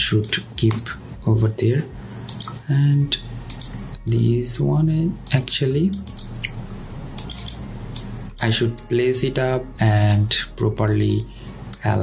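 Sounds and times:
low hum: 0:00.0 - 0:12.0
room hiss: 0:00.0 - 0:12.0.

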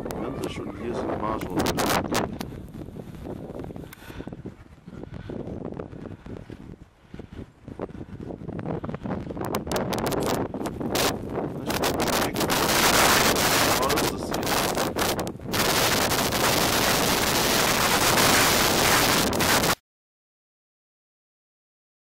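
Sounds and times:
wind buffeting microphone: 0:00.0 - 0:19.8.

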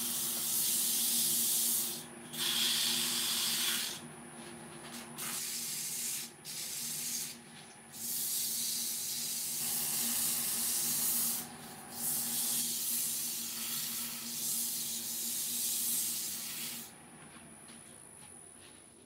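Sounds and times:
sandpaper hissing on spinning wood: 0:00.0 - 0:04.0, 0:05.2 - 0:16.9.

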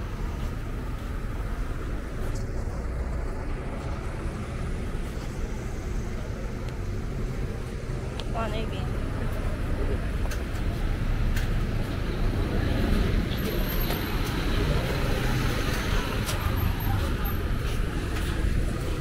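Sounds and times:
cars and motorbikes passing: 0:00.0 - 0:19.0
rumble of engines and tyres: 0:00.0 - 0:19.0.

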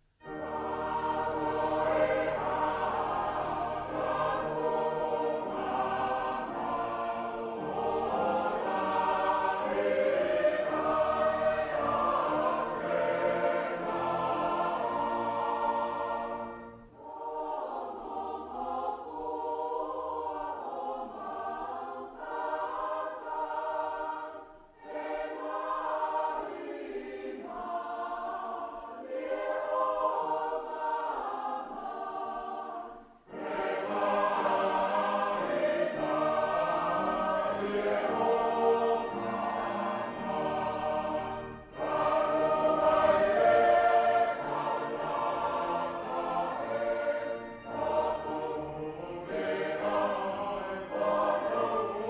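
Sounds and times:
mixed choir singing a hymn: 0:00.2 - 0:52.0.

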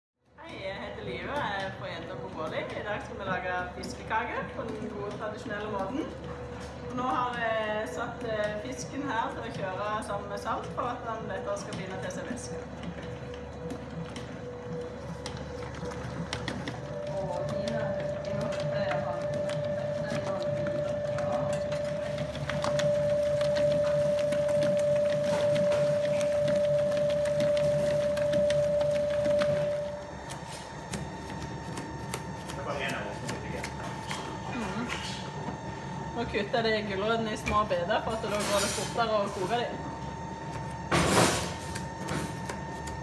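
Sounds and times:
mixer motor whine: 0:03.1 - 0:43.0.

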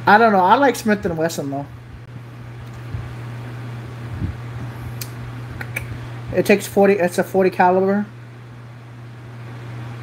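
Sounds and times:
fan humming: 0:00.0 - 0:10.0.

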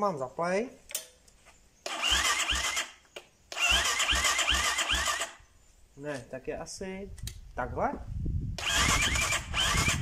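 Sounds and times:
electric starter cranking engine: 0:01.8 - 0:05.4, 0:08.6 - 0:10.0.

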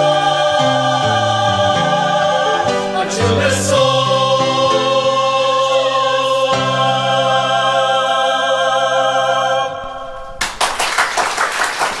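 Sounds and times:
choir holding a chord: 0:00.0 - 0:10.4
audience applause: 0:10.4 - 0:12.0.

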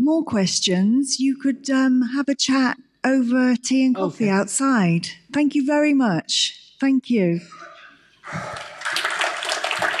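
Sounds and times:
audience applauding: 0:08.2 - 0:10.0.

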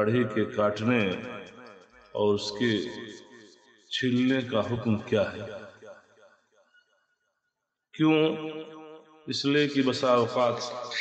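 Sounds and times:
man saying drawn-out word: 0:02.2 - 0:02.8, 0:09.3 - 0:11.0.

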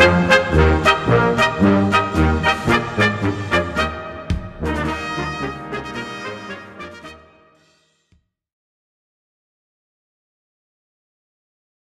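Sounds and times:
brass band playing: 0:00.0 - 0:07.8.

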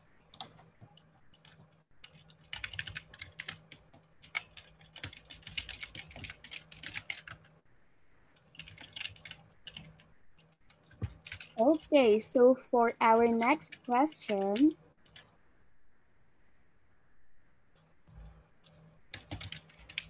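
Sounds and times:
typing on computer keyboard: 0:00.3 - 0:07.6, 0:08.4 - 0:12.0, 0:13.1 - 0:15.4, 0:18.6 - 0:20.0.

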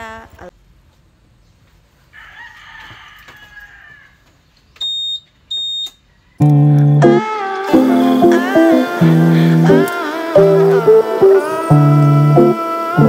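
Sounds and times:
rooster crowing: 0:02.1 - 0:04.3.

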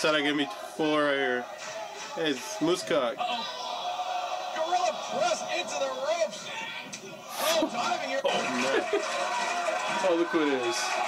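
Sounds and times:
men talking: 0:00.0 - 0:11.0
wrestling video audio: 0:00.0 - 0:11.0
men chuckling: 0:07.4 - 0:09.2.

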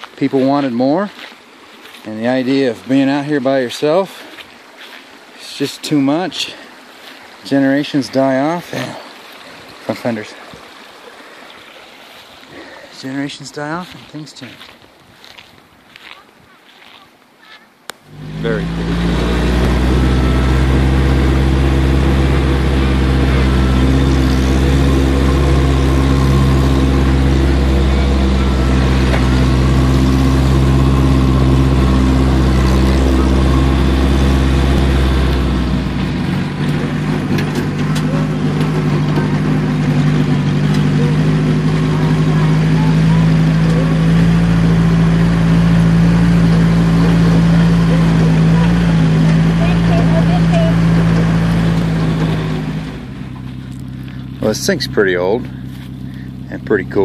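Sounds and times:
car engine running while driving: 0:18.0 - 0:57.0.

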